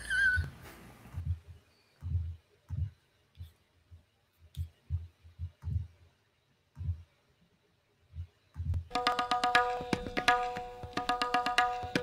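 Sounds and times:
person laughing squeal: 0.0s - 0.5s
faint low thumps: 1.1s - 3.1s, 4.7s - 6.1s, 8.1s - 9.0s.

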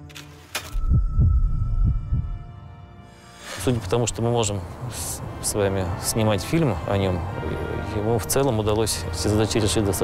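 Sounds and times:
heartbeat thuds: 0.8s - 2.6s.

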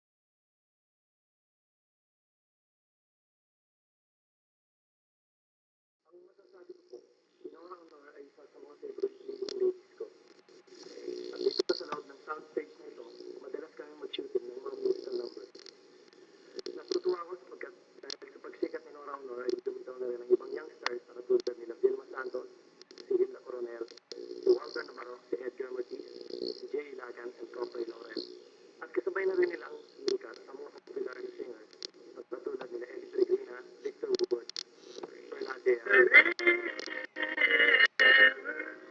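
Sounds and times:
muffled film speech: 6.1s - 15.6s, 16.4s - 38.9s
crackles and clicks: 8.8s - 17.4s, 18.0s - 38.7s.

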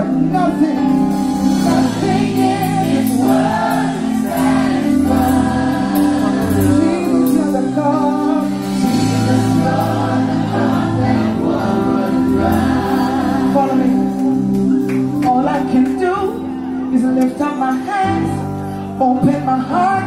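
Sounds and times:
band playing: 0.0s - 18.6s
drums steady beat: 1.2s - 7.6s
voices singing together: 1.2s - 15.8s.

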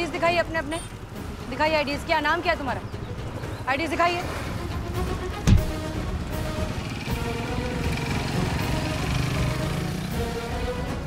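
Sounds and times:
motorcycle engines running: 5.8s - 11.0s.

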